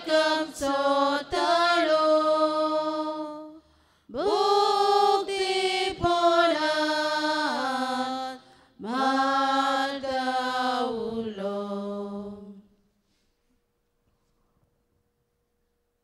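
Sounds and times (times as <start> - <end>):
person singing prayer chant: 0.0 - 12.7.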